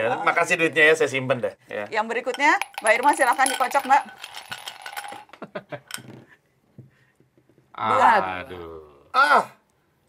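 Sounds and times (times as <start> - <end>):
dice rattling in a cup: 2.3 - 5.3.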